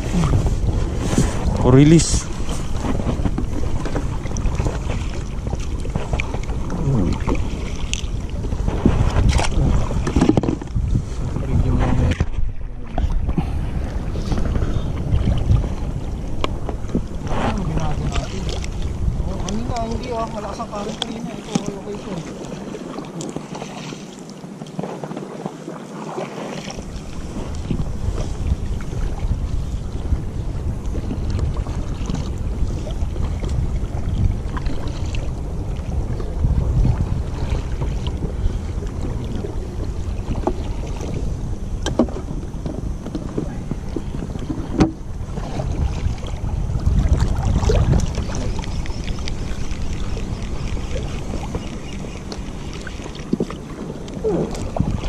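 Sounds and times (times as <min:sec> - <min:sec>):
wind buffeting the microphone: 0:00.0 - 0:23.6, 0:26.6 - 0:55.0
water splashing against boat: 0:00.0 - 0:55.0.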